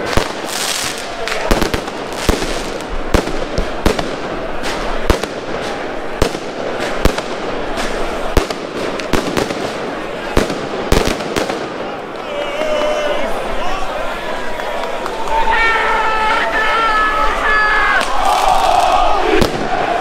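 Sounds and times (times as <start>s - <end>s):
firecrackers banging: 0.0s - 13.6s, 18.0s - 20.0s
crowd voices: 0.0s - 20.0s.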